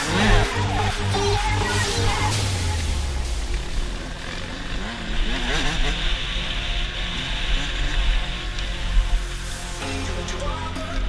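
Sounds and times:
background music with bass: 0.0 - 11.0
dirt bike engine revving: 0.0 - 11.0.

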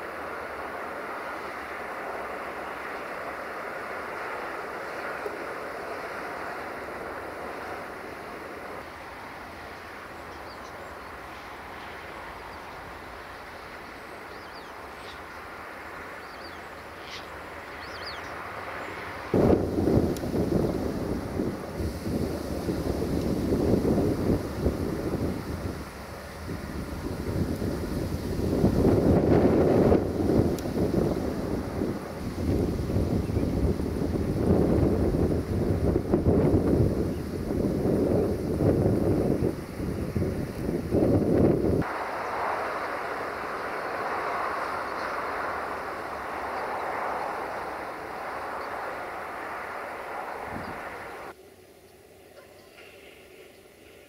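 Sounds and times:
faint steady hiss: 0.0 - 54.0
wind buffeting microphone: 17.4 - 51.4.

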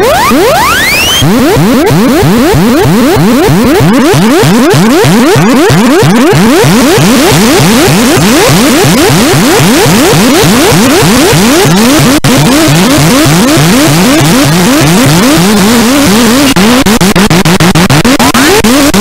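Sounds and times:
harsh synthesizer noise music: 0.0 - 19.0.

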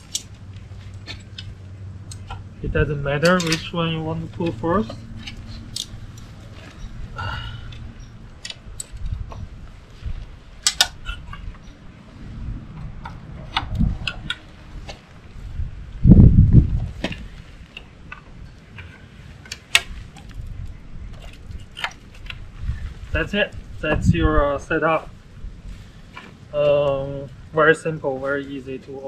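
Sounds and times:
low rumble: 0.0 - 29.0.

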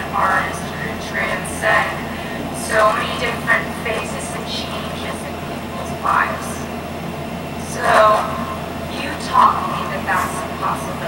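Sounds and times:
woman's speech from speakers: 0.0 - 6.7, 7.6 - 11.0
steady low hum: 0.0 - 11.0.

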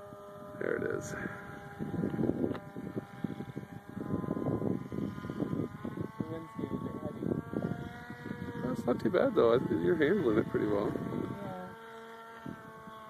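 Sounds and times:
electric motor and propeller whining: 0.0 - 13.0
wind buffeting microphone: 0.0 - 13.0.

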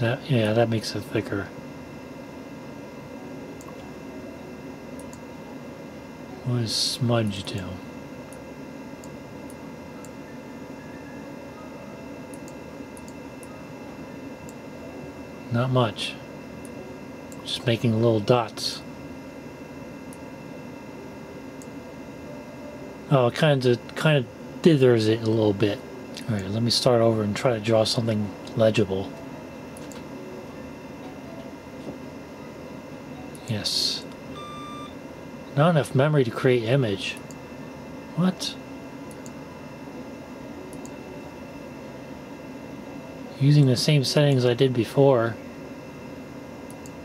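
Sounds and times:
computer equipment humming: 0.0 - 47.0
thin steady whines: 0.0 - 47.0.

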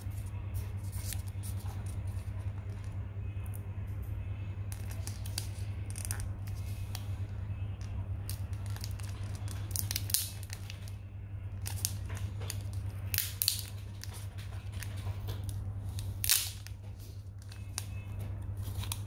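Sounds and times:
plastic film peeling and crinkling: 0.0 - 3.0, 4.7 - 19.0
steady low hum: 0.0 - 19.0.

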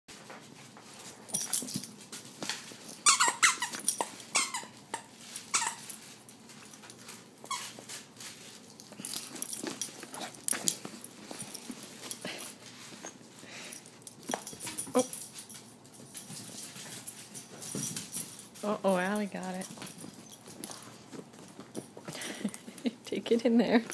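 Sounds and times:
squeaky dog toy squeaking: 3.0 - 5.9.

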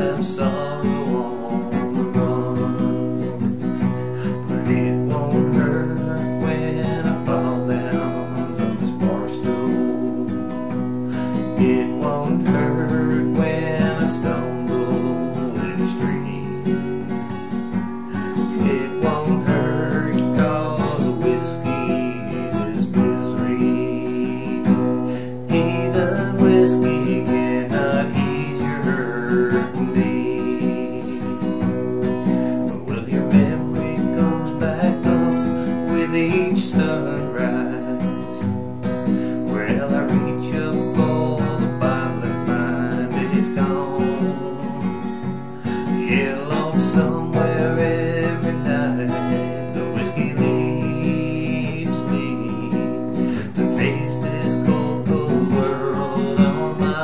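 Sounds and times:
acoustic guitar strummed: 0.0 - 57.0.

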